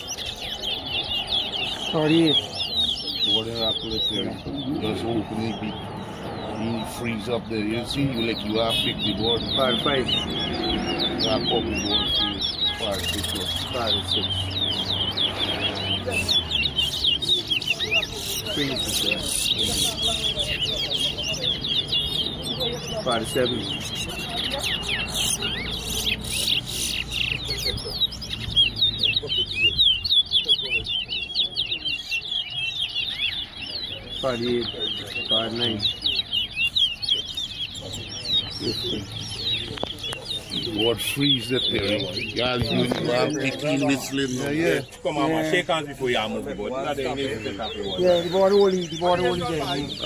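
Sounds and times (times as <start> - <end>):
birds chirping and twittering: 0.0 - 50.0.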